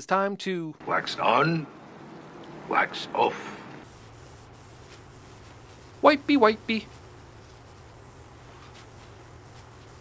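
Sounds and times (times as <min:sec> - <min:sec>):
cloth rubbing on wood: 0:03.8 - 0:10.0.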